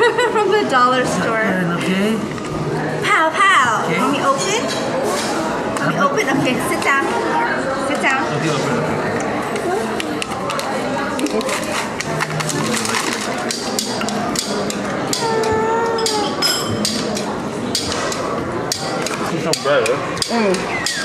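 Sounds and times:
hubbub of voices: 0:00.0 - 0:21.0
plates and cutlery clinking: 0:10.0 - 0:21.0
child calling: 0:15.2 - 0:16.4.

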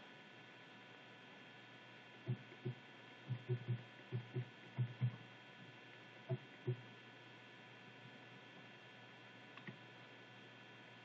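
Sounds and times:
faint electrical hum: 0:00.0 - 0:11.0
fingers pressing machine buttons: 0:02.3 - 0:05.2.

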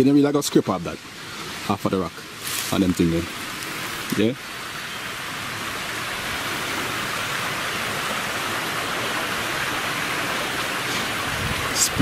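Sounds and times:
running water rushing: 0:00.0 - 0:12.0.

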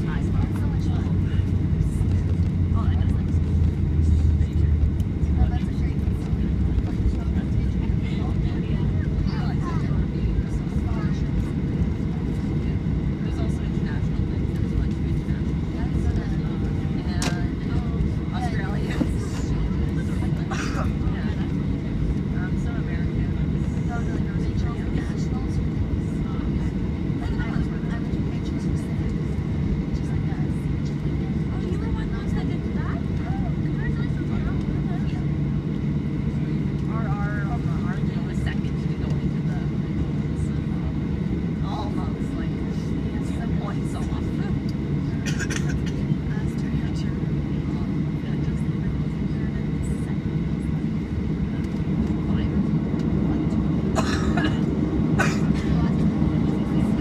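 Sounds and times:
faint voices: 0:00.0 - 0:57.0
jet engines low rumble: 0:00.0 - 0:57.0.

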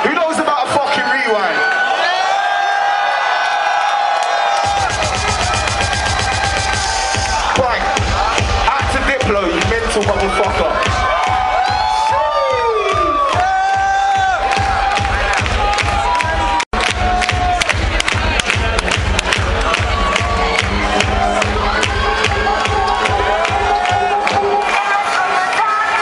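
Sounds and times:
crowd shouting and cheering: 0:00.0 - 0:26.0
electronic dance music: 0:04.5 - 0:26.0.

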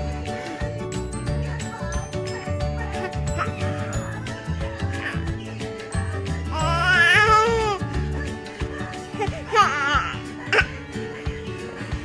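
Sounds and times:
background music: 0:00.0 - 0:12.0
baby squealing: 0:06.5 - 0:07.9, 0:09.2 - 0:10.8.

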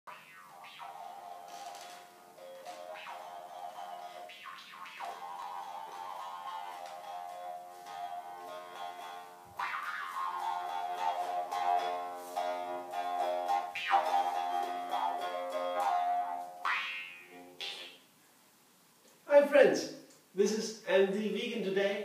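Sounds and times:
harmonica chords: 0:00.1 - 0:17.9.

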